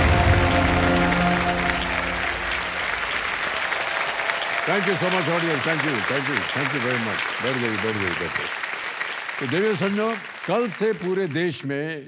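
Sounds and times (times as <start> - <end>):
held musical chord: 0.0 - 3.1
audience applauding: 0.0 - 11.8.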